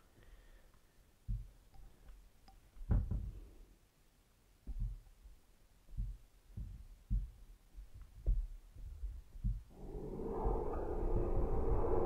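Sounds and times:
low dull thuds: 0:01.3 - 0:01.6, 0:02.8 - 0:03.5, 0:04.6 - 0:05.0, 0:05.9 - 0:11.9.

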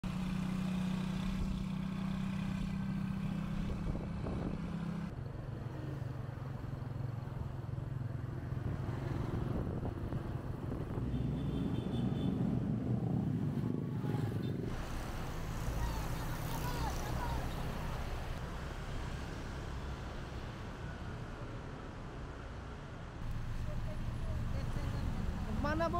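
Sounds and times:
road noise: 0:00.0 - 0:25.9.

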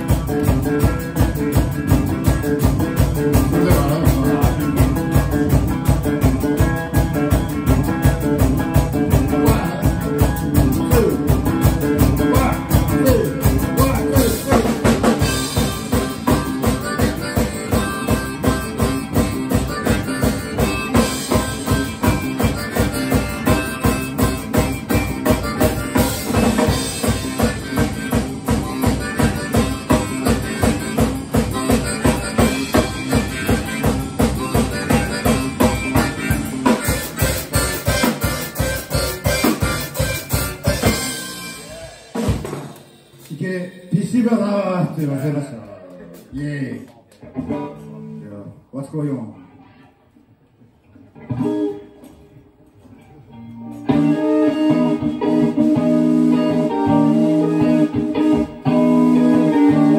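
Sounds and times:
harmonica: 0:00.0 - 0:42.2, 0:53.8 - 0:59.9
live rock band playing: 0:00.0 - 0:45.2, 0:47.1 - 0:48.3, 0:51.0 - 0:59.9.

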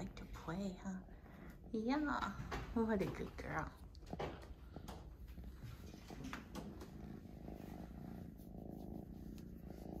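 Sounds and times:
cat purring: 0:00.0 - 0:10.0
soft rustles: 0:00.0 - 0:10.0.

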